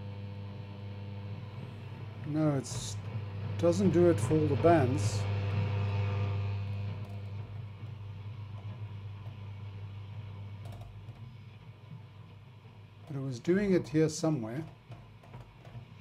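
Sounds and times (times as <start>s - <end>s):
radio low hum: 0.8s - 10.6s.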